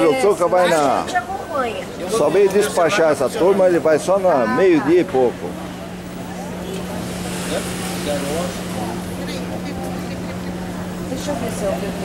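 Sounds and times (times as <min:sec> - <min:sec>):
faint distant voices: 0:00.0 - 0:12.0
steady low hum: 0:05.0 - 0:12.0.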